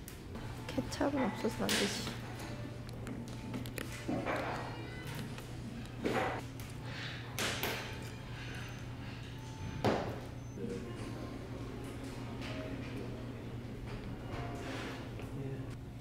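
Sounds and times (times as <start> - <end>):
low hum of a dining room: 0.0 - 16.0.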